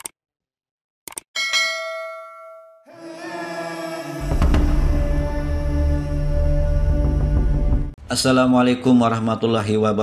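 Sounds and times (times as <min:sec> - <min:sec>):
bright bell ding: 0:01.4 - 0:02.8.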